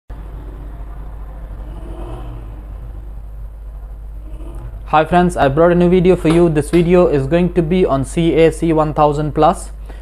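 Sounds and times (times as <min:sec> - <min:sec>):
low background rumble: 0:00.1 - 0:09.0.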